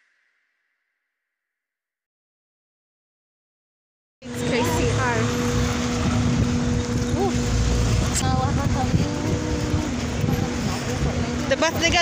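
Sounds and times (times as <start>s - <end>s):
bus engine rumbling: 4.2s - 12.0s
street traffic: 4.2s - 12.0s
voices: 4.2s - 12.0s.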